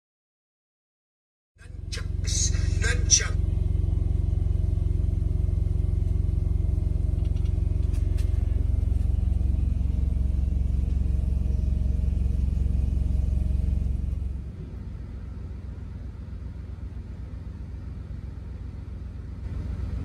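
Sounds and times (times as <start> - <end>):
diesel truck engine humming: 1.6 - 20.0.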